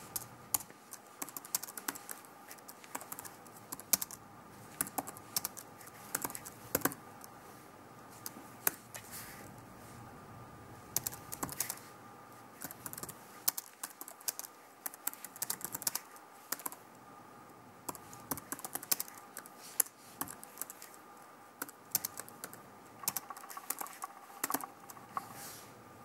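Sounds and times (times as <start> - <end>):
computer keyboard typing: 0.0 - 7.3, 11.0 - 11.8, 12.6 - 16.8, 17.8 - 21.0, 21.6 - 25.5.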